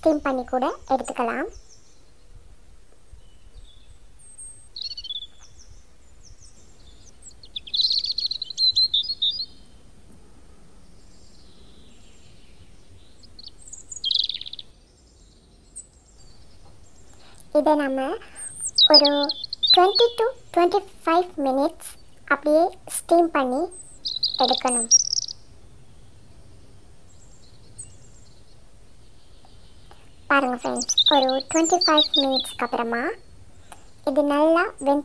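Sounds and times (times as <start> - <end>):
small birds chirping: 0.0 - 35.0.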